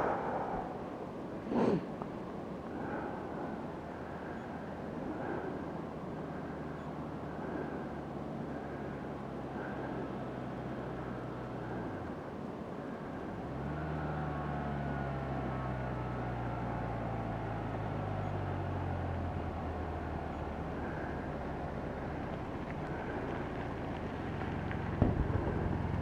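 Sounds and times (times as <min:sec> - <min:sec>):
motorcycle approaching: 0:03.7 - 0:26.0
motorcycle engine: 0:13.0 - 0:26.0.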